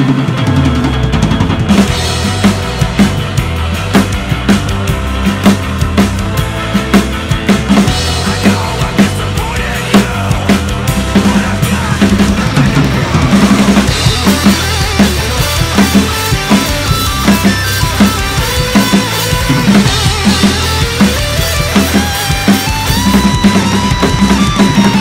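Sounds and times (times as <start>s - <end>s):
drum kit played fast: 0.0s - 25.0s
recorded metalcore track: 0.0s - 25.0s.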